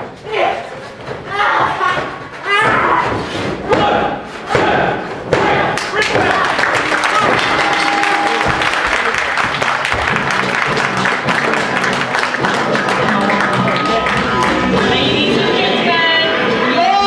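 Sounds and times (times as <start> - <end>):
crowd voices: 0.2 - 17.0
crowd clapping: 5.7 - 15.2
music: 6.6 - 17.0.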